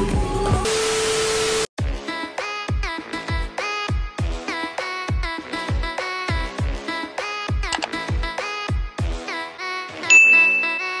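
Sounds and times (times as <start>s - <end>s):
electronic background music: 7.7s - 8.2s
bell-like ding: 10.1s - 11.0s.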